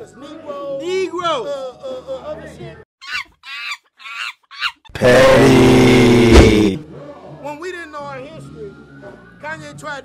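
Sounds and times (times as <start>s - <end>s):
squeaky monkey-like calls: 3.0s - 4.9s
loud buzzy low blast: 5.0s - 6.8s.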